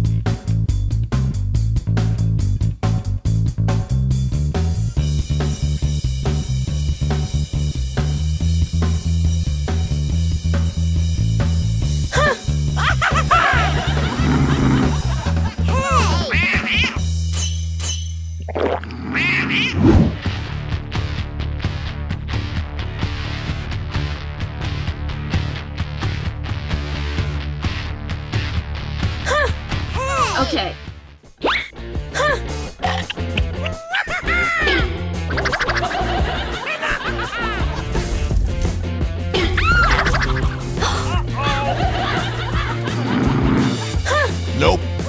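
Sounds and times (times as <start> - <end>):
comedy background music: 0.0 - 18.1, 18.9 - 20.5, 29.0 - 45.0
laughter: 12.8 - 16.9, 33.6 - 38.1, 39.4 - 44.3
swish: 19.7 - 20.3.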